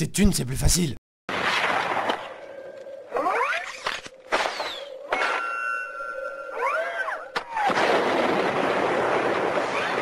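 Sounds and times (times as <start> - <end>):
loud long explosion: 7.6 - 10.0.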